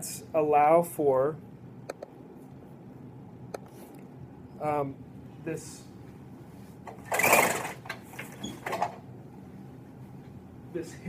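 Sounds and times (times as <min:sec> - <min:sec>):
projection screen clicks: 0:01.9 - 0:02.2
projection screen rattling: 0:06.9 - 0:09.0.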